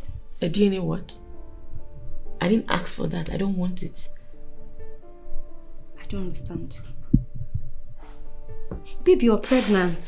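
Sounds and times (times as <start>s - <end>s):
short low thumps: 6.4s - 8.8s.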